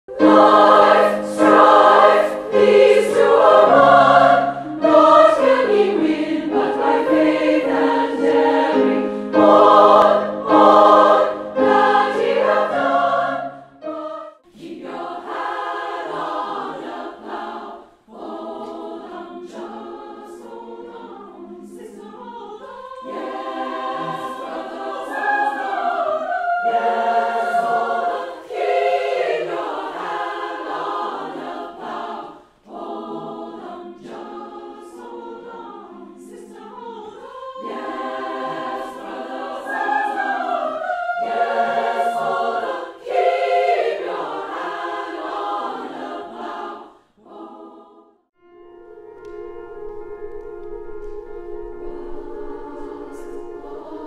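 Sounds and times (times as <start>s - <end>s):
women's choir singing in harmony: 0.1s - 48.4s, 51.0s - 54.0s.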